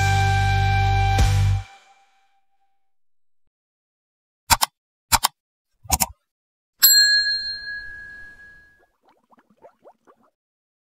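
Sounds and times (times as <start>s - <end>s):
bright bell ding: 6.8s - 8.8s.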